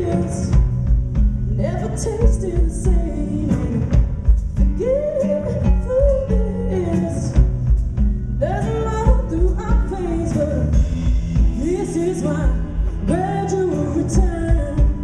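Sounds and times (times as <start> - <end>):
electric guitar chords: 0.0 - 15.0
woman singing: 0.0 - 15.0
drum beat: 9.1 - 12.8.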